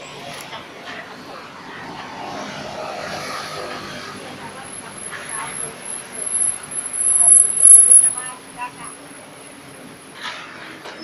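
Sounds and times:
passing engine: 0.0s - 8.6s
street noise: 0.0s - 11.0s.

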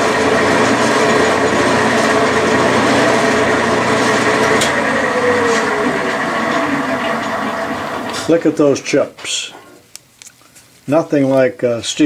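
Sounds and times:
lathe tool cutting metal: 0.0s - 8.6s
metal lathe running: 0.0s - 8.9s.

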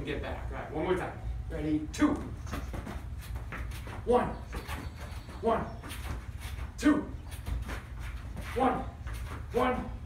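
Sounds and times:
sneaker steps and scuffs on rubber: 2.1s - 10.0s.

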